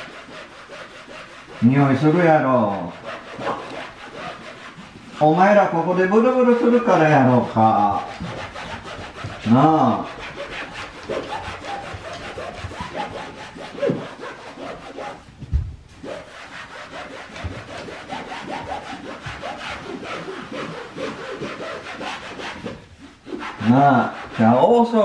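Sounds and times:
wall scrubbing by hand: 0.0 - 25.0
soft thump: 15.4 - 15.8.

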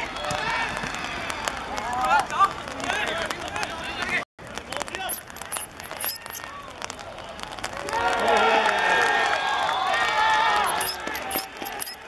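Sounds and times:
outdoor background noise: 0.0 - 12.0
voices calling out and talking: 10.4 - 12.0.

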